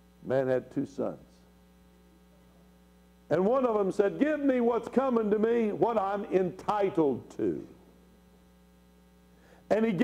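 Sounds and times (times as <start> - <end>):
faint mains hum: 0.0 - 10.0
man's voice: 3.3 - 7.7, 9.7 - 10.0.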